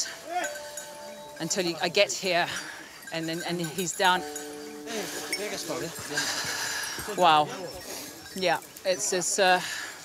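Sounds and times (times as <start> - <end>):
metallic jingling: 0.0 - 10.0.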